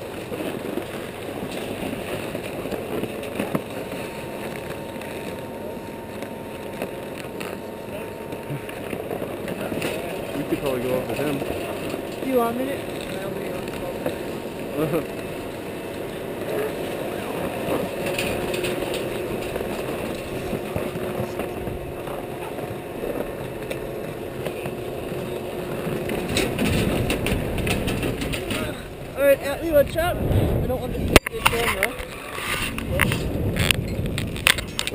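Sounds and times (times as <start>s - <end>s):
chairlift clack: 0.0s - 34.9s
skis scraping over snow: 0.0s - 34.9s.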